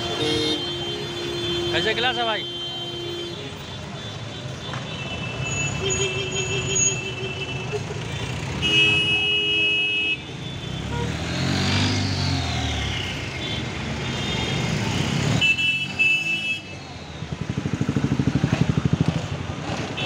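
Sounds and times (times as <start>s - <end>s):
vehicle horns honking: 0.0s - 11.8s, 12.6s - 16.9s
busy street traffic: 0.0s - 20.0s.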